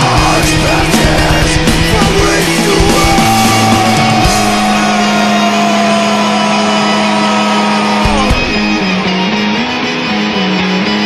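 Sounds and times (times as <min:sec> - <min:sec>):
droning metal music: 0:00.0 - 0:11.0.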